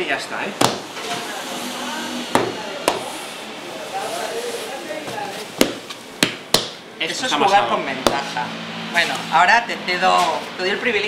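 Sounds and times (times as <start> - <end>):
dough slapping on counter: 0.6 - 0.9, 2.4 - 3.1, 5.6 - 6.8.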